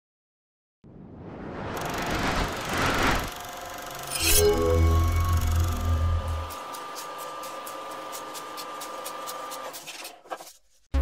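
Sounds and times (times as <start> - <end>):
whoosh sound effect: 0.9 - 3.4.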